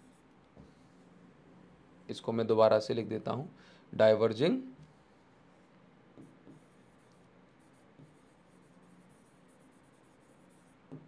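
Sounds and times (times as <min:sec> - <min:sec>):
stylus scratching on touchscreen: 0:06.2 - 0:11.0.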